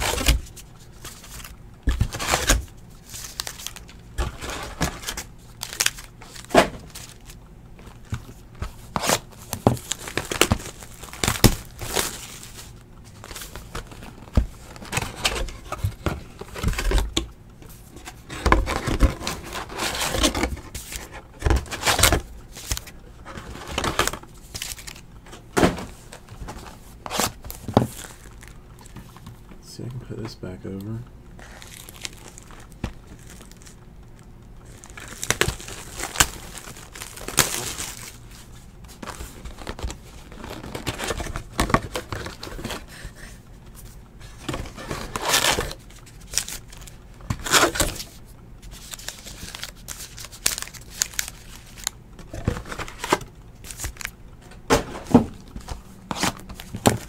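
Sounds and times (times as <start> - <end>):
card packs tapping and rustling: 0.0 - 57.0.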